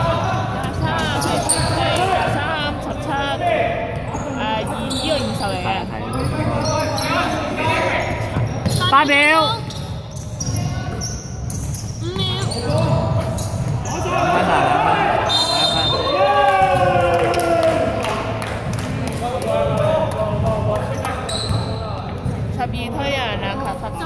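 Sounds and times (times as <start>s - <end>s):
players shouting: 13.8s - 18.2s.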